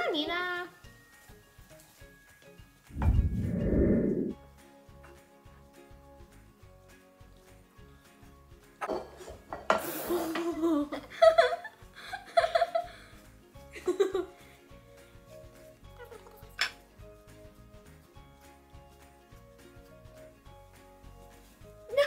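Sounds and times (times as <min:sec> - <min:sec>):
faint background music: 0:00.0 - 0:22.0
loud muffled low noise: 0:03.0 - 0:04.4
girls laughing: 0:10.2 - 0:13.0, 0:13.7 - 0:14.4.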